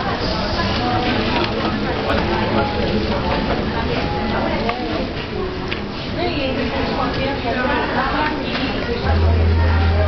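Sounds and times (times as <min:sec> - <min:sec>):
people talking: 0:00.0 - 0:05.4, 0:06.1 - 0:10.0.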